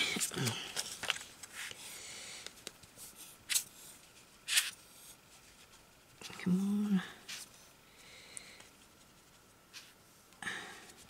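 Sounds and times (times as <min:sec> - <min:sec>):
paper handling: 0:00.1 - 0:01.8.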